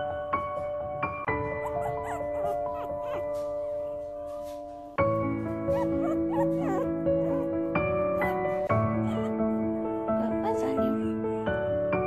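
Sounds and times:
puppies whimpering: 0:01.3 - 0:09.4.

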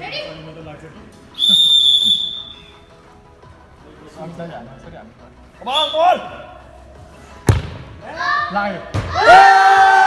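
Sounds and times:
long whistle blast: 0:01.4 - 0:02.7.

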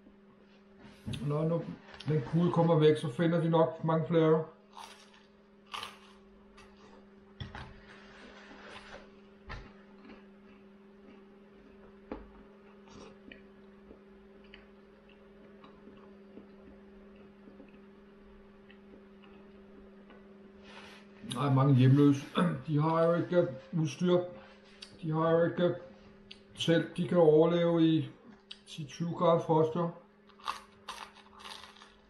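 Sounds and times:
steady electrical hum: 0:00.0 - 0:32.0
person chewing crunchy toast: 0:04.7 - 0:07.1, 0:08.0 - 0:20.4, 0:30.2 - 0:32.0
chewing mouth clicks: 0:12.7 - 0:17.9.

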